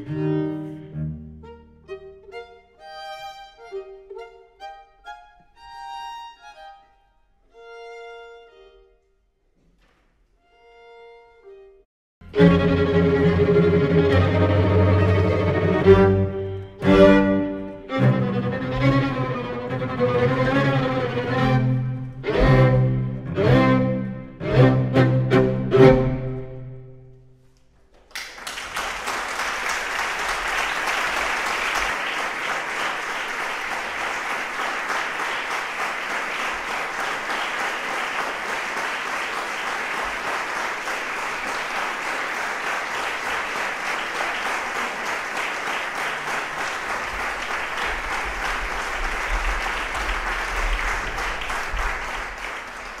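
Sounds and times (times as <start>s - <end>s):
audience applauding: 28.0s - 53.0s.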